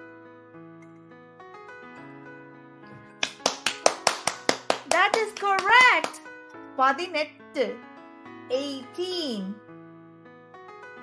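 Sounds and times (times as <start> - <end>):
background music: 0.0 - 11.0
rapid hand clapping: 3.1 - 6.2.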